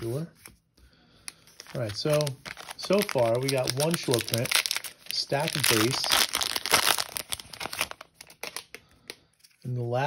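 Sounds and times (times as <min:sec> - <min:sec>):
plastic wrapper crinkling: 0:01.3 - 0:08.8.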